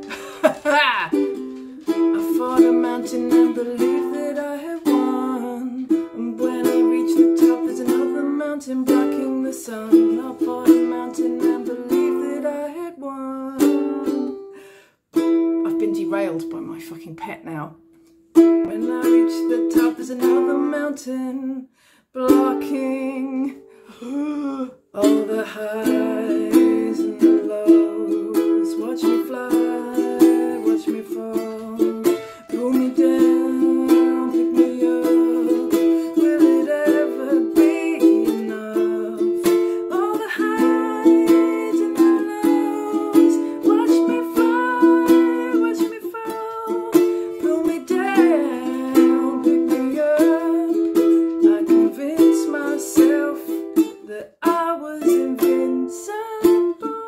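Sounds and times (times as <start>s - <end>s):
ukulele strumming chords: 0.0s - 21.6s, 22.2s - 23.8s, 24.9s - 57.0s.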